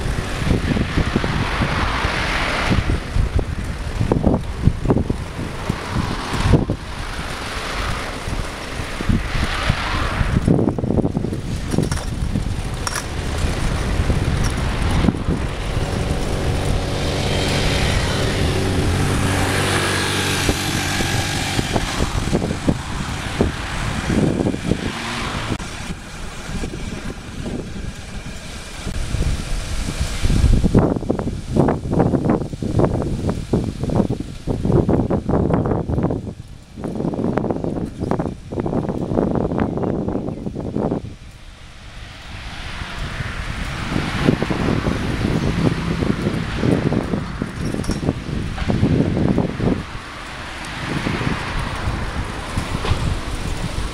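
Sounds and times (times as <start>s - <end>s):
engine humming: 0.0s - 53.9s
vehicle passing with whoosh: 0.0s - 53.9s
wind buffeting microphone: 0.0s - 53.9s.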